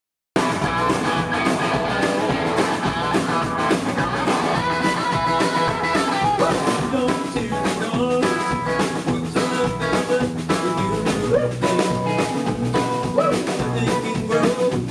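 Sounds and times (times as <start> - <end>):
live rock band playing: 0.4 - 14.9.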